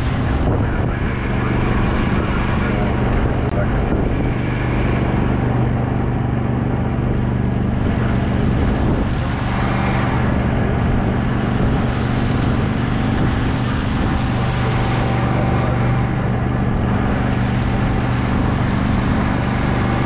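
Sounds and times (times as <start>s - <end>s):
truck engine drone: 0.0s - 20.0s
wind: 0.0s - 20.0s
water spray hissing: 7.2s - 20.0s.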